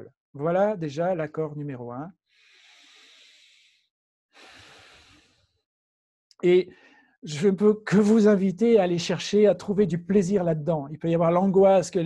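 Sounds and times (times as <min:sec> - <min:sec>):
man breathing deeply: 0:02.3 - 0:05.6.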